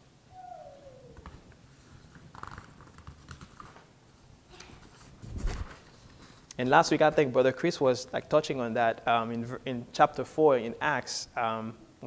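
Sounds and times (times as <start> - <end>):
paper rustling: 1.2 - 3.9, 4.5 - 6.5.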